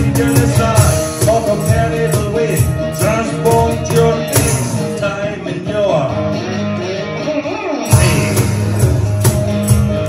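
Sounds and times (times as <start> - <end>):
cajon beat: 0.0 - 5.9, 7.2 - 10.0
strummed cigar box guitar: 0.0 - 10.0.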